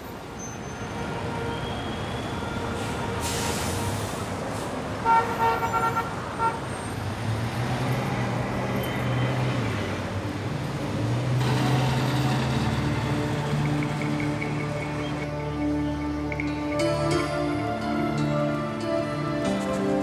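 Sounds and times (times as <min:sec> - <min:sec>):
cars driving past: 0:00.0 - 0:20.0
car horn toot: 0:05.0 - 0:06.6
soft music of low notes: 0:13.5 - 0:20.0.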